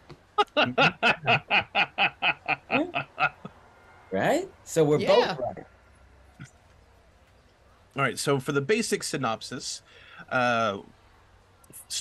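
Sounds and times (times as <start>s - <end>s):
man laughing: 0.4s - 3.5s, 9.6s - 10.8s.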